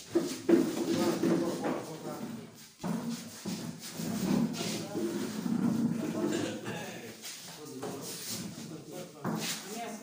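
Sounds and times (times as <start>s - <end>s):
men talking: 4.5s - 9.7s.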